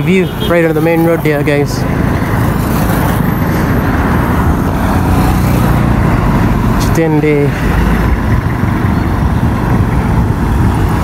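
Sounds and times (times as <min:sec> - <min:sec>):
busy road traffic: 0:00.0 - 0:11.0.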